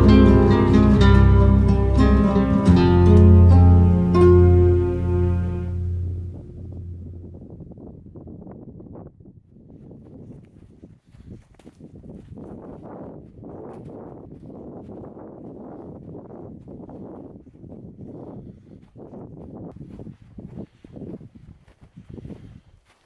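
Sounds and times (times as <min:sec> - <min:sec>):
footsteps crunching on snow: 0:09.6 - 0:23.0.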